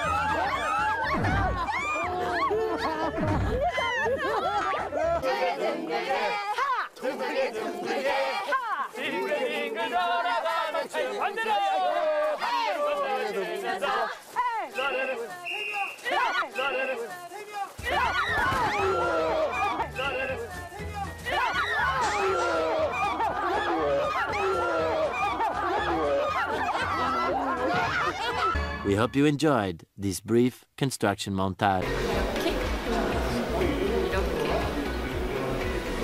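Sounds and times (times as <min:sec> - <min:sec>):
background music: 0:00.0 - 0:06.0, 0:17.8 - 0:30.2, 0:31.8 - 0:36.0
people shouting and chattering: 0:00.0 - 0:29.6, 0:31.8 - 0:36.0.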